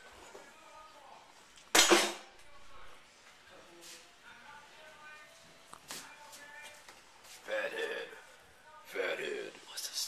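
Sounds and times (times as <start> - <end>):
kitchenware clattering: 1.7 - 2.3.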